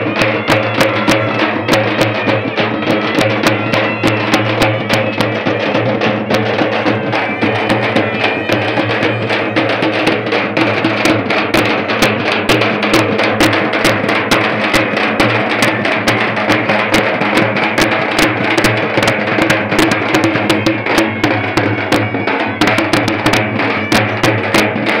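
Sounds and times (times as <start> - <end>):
fast loud drumming: 0.0 - 25.0.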